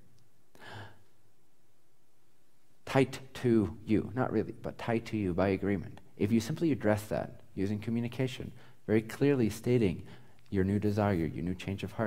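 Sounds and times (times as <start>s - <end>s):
man breathing: 0.5s - 1.2s.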